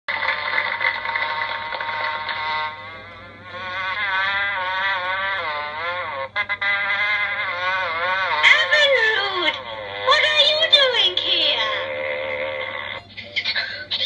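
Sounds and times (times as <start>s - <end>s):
soundtrack music from television: 12.6s - 14.0s.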